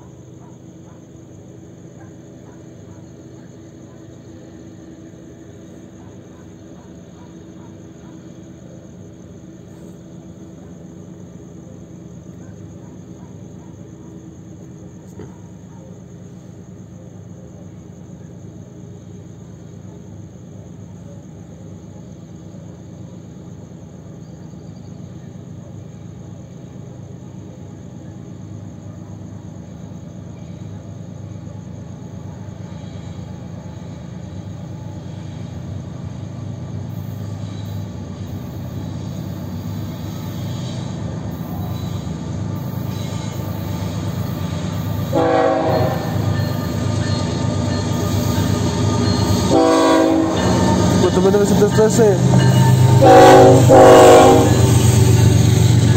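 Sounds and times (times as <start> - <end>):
diesel locomotives rumbling: 0.0 - 55.9.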